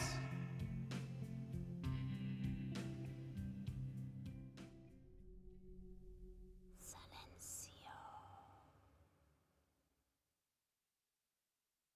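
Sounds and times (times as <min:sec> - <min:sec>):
faint low hum: 0:06.0 - 0:08.8
woman whispering: 0:06.8 - 0:08.7.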